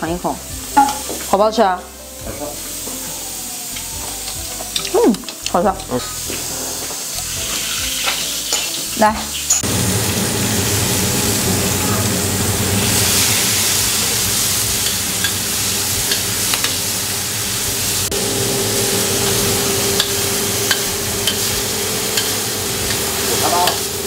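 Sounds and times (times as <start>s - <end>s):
food sizzling in hot oil: 0.0s - 24.0s.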